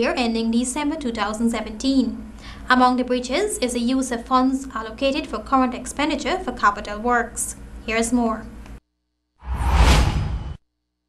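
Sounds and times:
whoosh transition effect: 9.4s - 10.6s.

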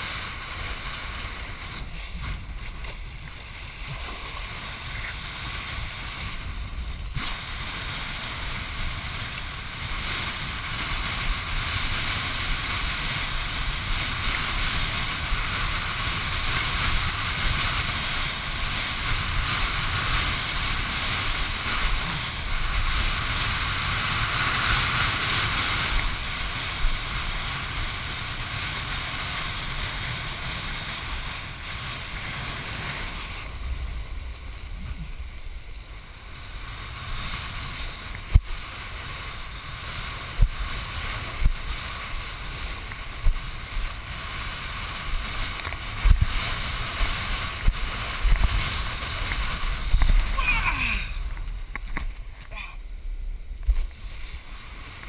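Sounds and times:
kiteboard skimming water: 0.0s - 55.0s
wind rushing over camera: 0.0s - 55.0s.

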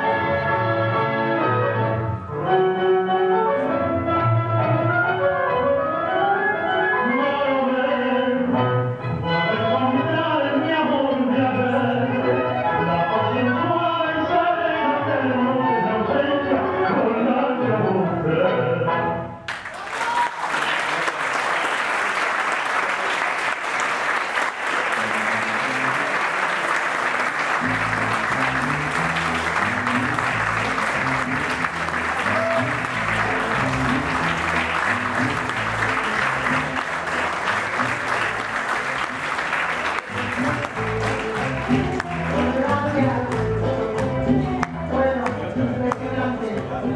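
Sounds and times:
audience applauding: 19.5s - 45.4s.

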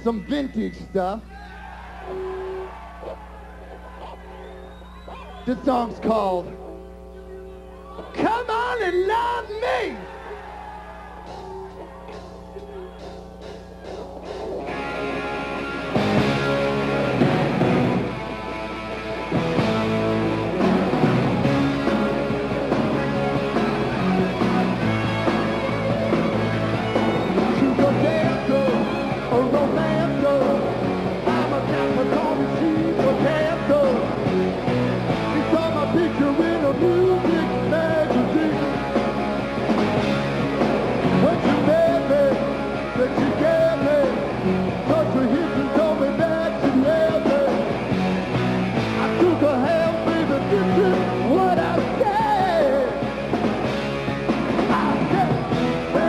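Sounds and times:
electric guitars: 10.0s - 56.0s
drum kit: 10.6s - 56.0s.

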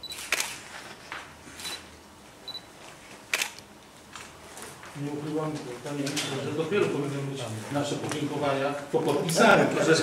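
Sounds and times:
camera shutters clicking: 0.0s - 1.0s, 3.3s - 4.3s.

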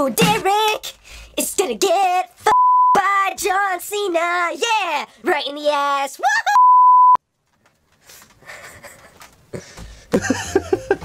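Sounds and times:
censor bleep tone: 2.5s - 3.0s, 6.6s - 7.2s.

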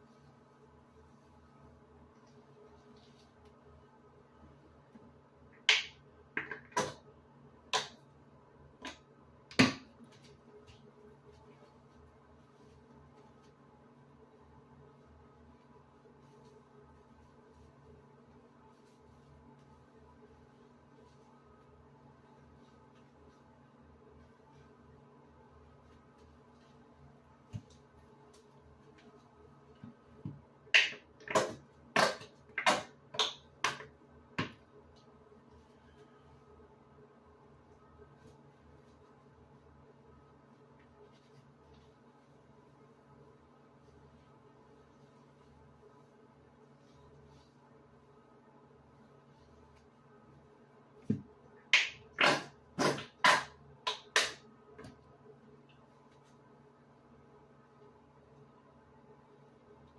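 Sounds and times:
faint steady hum: 0.0s - 59.9s.

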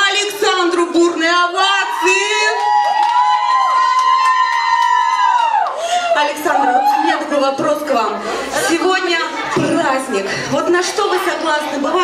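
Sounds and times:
faint voices in a hall: 0.0s - 12.0s
high-pitched vocal whoop: 1.8s - 7.3s.

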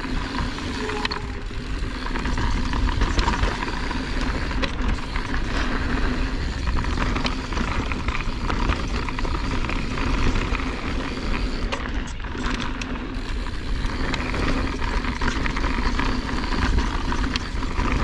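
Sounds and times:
wind buffeting microphone: 0.0s - 12.3s, 13.2s - 18.0s
bike rattles and clicks: 0.0s - 18.0s
bike tyre rumble on dirt: 0.0s - 18.0s.

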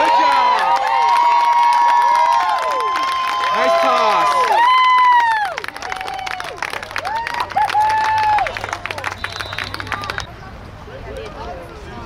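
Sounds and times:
spectators yelling: 0.0s - 5.6s
hand clapping: 5.2s - 10.3s.

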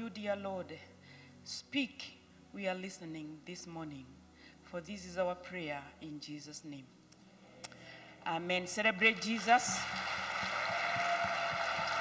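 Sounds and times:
crowd clapping: 9.1s - 12.0s.

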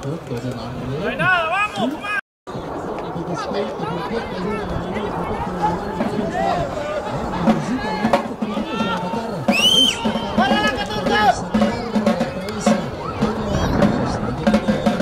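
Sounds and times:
voices shouting: 1.1s - 15.0s.

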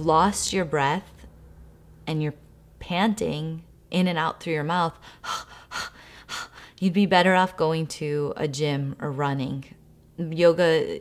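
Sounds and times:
woman speaking: 0.0s - 1.3s, 2.0s - 5.6s, 6.8s - 11.0s
woman panting: 5.0s - 6.8s.

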